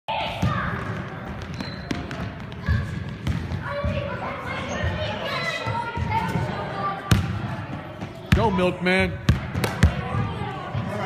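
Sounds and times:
voices in a hall: 0.1s - 11.0s
basketballs bouncing on hardwood: 0.4s - 4.2s, 9.2s - 10.4s.

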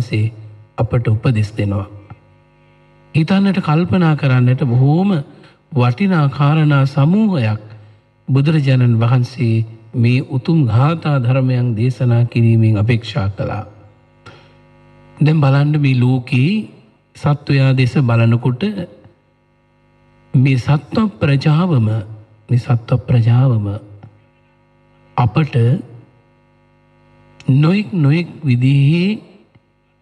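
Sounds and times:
man preaching: 0.0s - 2.1s, 3.2s - 13.8s, 15.2s - 19.0s, 20.4s - 24.0s, 25.2s - 26.0s, 27.4s - 29.4s
man speaking: 0.0s - 2.2s, 3.2s - 13.9s, 15.2s - 19.1s, 20.4s - 24.0s, 25.2s - 26.1s, 27.4s - 29.4s
faint electrical hum: 0.0s - 30.0s.

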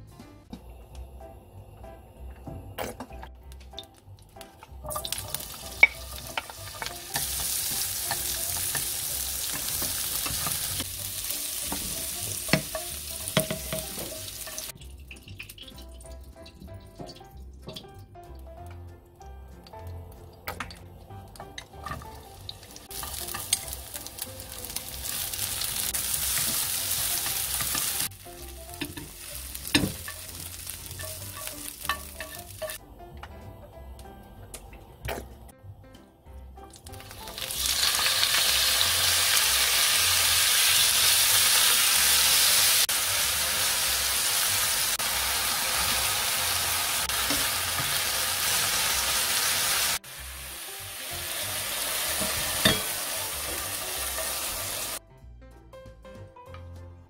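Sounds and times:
food sizzling in frying pan: 4.4s - 16.0s, 20.7s - 32.8s, 36.8s - 55.0s
chopsticks clicking and tapping: 28.8s - 33.4s.

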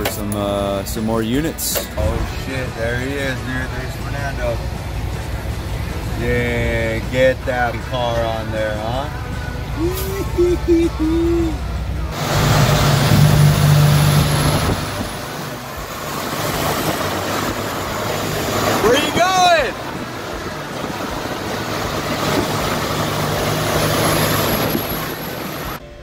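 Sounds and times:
diesel truck engine humming: 0.0s - 26.0s.

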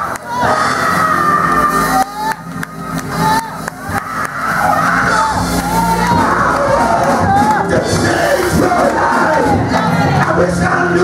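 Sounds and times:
congregation calling out and cheering: 0.0s - 11.0s
steady sustained music: 0.0s - 11.0s.

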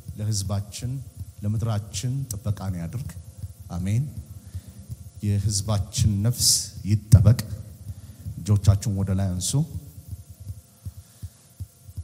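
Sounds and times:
faint steady hum: 0.0s - 12.0s
soft low thumps: 0.0s - 12.0s.

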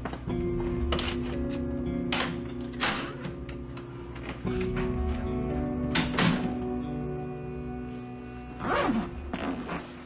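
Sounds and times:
suitcase zipper rasping: 8.6s - 10.0s.

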